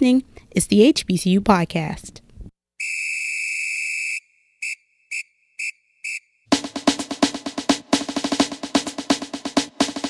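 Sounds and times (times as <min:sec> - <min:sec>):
whistle blasts: 0:02.8 - 0:06.5.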